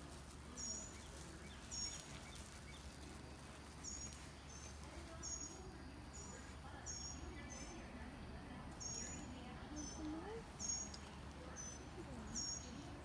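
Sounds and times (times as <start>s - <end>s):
high-pitched bird chirps: 8.8s - 12.9s.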